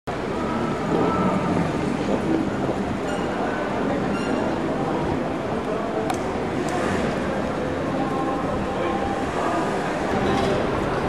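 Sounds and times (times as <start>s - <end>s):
city street noise: 0.1s - 11.0s.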